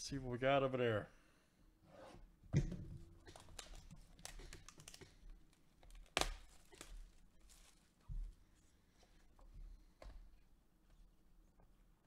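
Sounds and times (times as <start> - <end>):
plastic shrink-wrap crinkling: 3.2 - 8.0.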